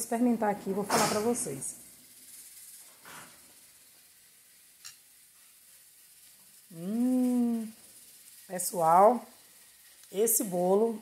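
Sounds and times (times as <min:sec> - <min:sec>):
person humming mmm: 0:06.7 - 0:07.8.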